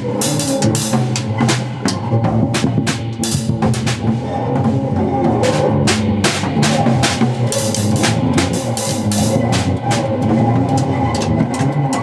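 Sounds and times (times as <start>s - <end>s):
loud rock music with guitar: 0.0s - 12.0s
child hitting drum kit: 5.4s - 11.3s.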